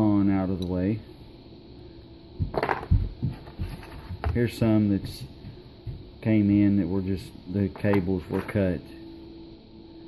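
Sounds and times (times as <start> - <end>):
cables and connectors clattering: 2.5 - 4.5, 7.8 - 8.7.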